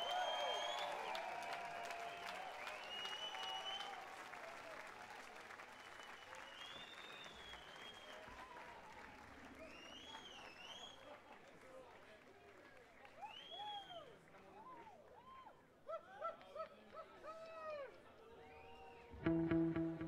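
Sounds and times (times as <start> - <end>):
whistles from audience: 0.0 - 4.2, 5.6 - 11.1, 13.2 - 14.2, 18.4 - 19.1
audience applauding: 0.0 - 13.8.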